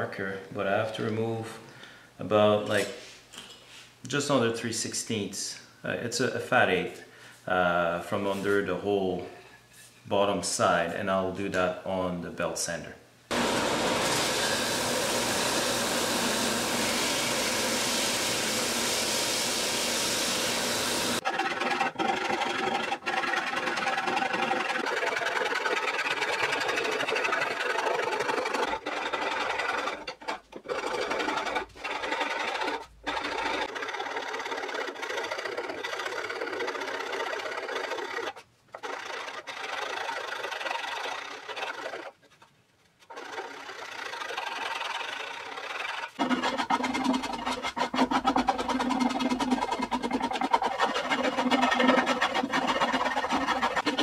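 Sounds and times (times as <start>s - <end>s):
belt sander sanding wood: 13.3s - 37.8s, 43.1s - 54.0s
hand tools scraping wood: 13.3s - 54.0s.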